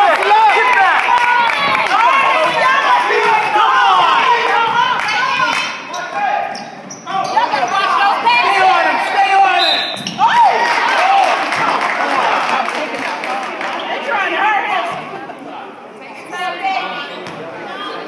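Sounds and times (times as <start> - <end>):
people shouting: 0.0 - 6.5, 7.1 - 12.4
sneakers squeaking on hardwood: 4.6 - 8.2, 9.7 - 10.4.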